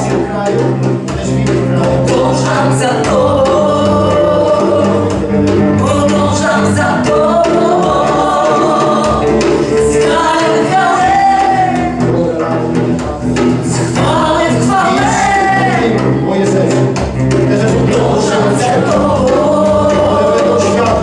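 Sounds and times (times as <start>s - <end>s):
voices singing worship music: 0.0s - 21.0s.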